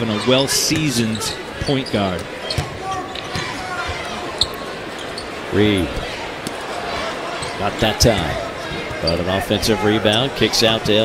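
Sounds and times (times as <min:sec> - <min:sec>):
sneakers squeaking: 0:00.0 - 0:09.4
arena crowd hubbub: 0:00.0 - 0:11.0
basketball bouncing: 0:01.6 - 0:04.0.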